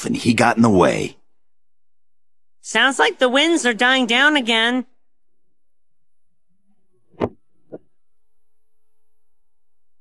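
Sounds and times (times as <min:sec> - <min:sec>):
faint steady tone: 0:04.9 - 0:10.0
short thumps: 0:07.1 - 0:07.8.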